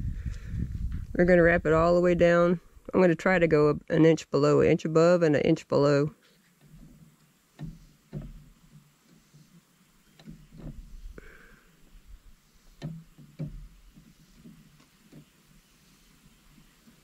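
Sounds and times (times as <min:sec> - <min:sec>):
soft rustles: 0:06.1 - 0:17.0.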